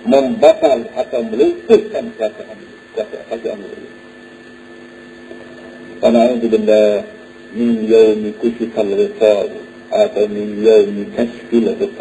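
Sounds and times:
background hum with hiss: 0:00.0 - 0:12.0.

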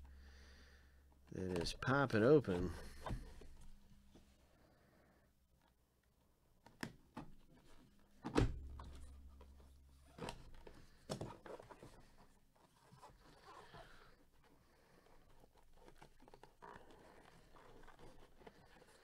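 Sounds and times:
cardboard rustling and scraping: 0:01.4 - 0:04.4, 0:08.8 - 0:19.0.

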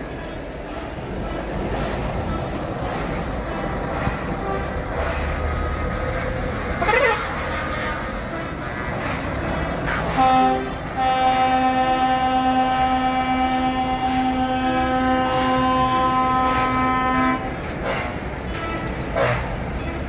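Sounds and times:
diesel truck engines running: 0:00.0 - 0:20.0
truck air horn blasts: 0:06.2 - 0:09.0, 0:09.8 - 0:19.6.

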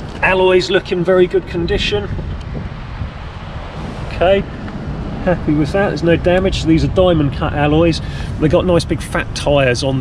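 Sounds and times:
wind across microphone: 0:00.0 - 0:10.0.

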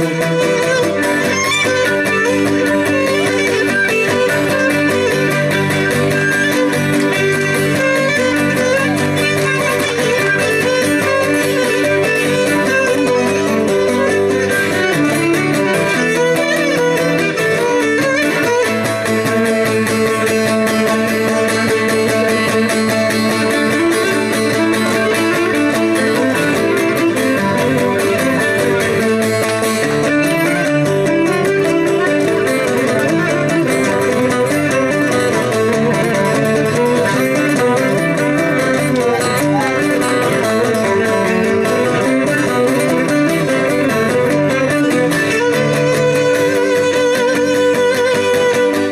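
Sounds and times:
lyra with lute accompaniment: 0:00.0 - 0:48.9.

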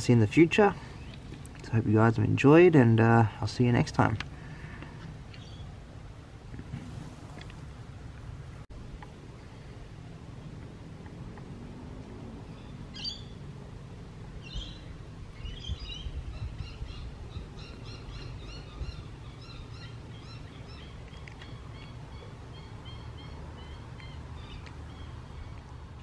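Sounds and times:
steady low rumble: 0:00.0 - 0:22.9
birds chirping: 0:00.4 - 0:02.1, 0:04.5 - 0:05.8, 0:12.4 - 0:13.5, 0:14.4 - 0:26.0.

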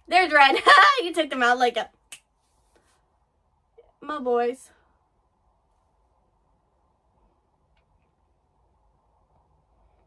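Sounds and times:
finger snap: 0:02.0 - 0:02.3.

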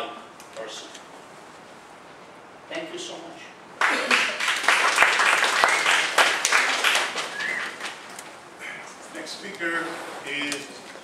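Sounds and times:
audience applauding: 0:03.8 - 0:08.2
short high calls: 0:07.2 - 0:08.8.

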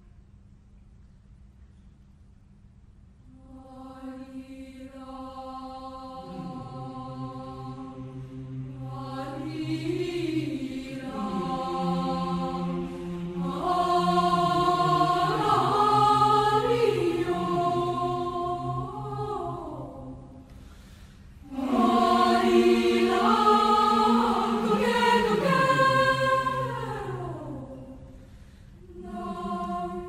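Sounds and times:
choir singing sustained chords: 0:03.3 - 0:30.0.

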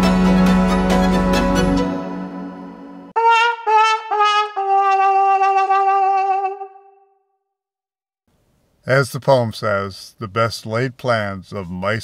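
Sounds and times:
sad trombone on muted brass: 0:03.2 - 0:06.9.

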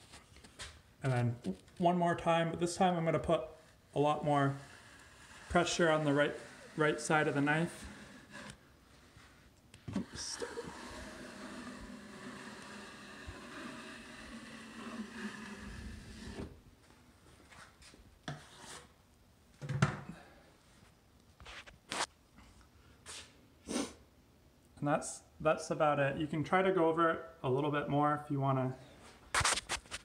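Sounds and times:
taping knife scraping compound: 0:02.3 - 0:16.6, 0:18.3 - 0:19.0, 0:29.3 - 0:30.0.

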